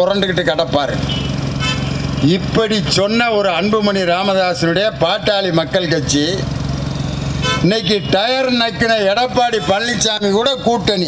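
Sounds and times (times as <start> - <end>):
man's amplified speech: 0.0 - 1.2, 2.2 - 6.5, 7.5 - 11.0
vehicle engine running: 0.0 - 11.0.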